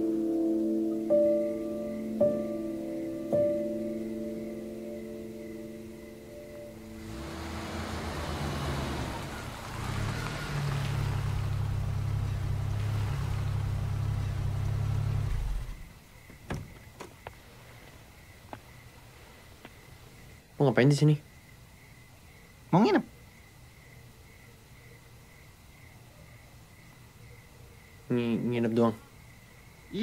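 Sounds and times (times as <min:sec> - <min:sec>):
car engine humming: 0:05.7 - 0:18.0.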